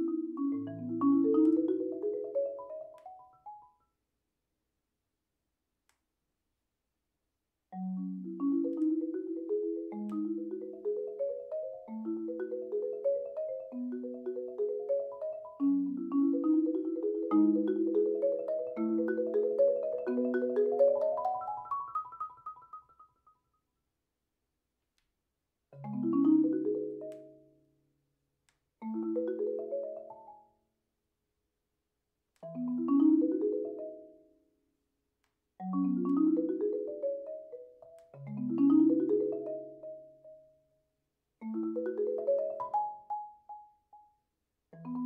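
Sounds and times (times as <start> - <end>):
marimba notes stepping upward: 0.0 - 3.6, 7.8 - 23.1, 25.8 - 27.5, 35.6 - 40.2, 41.4 - 43.7.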